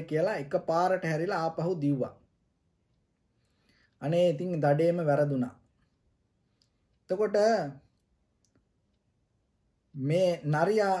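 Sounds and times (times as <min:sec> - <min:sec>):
man speaking: 0:00.0 - 0:02.2, 0:04.0 - 0:05.7, 0:07.1 - 0:08.0, 0:09.9 - 0:11.0
faint clicks: 0:06.5 - 0:07.0.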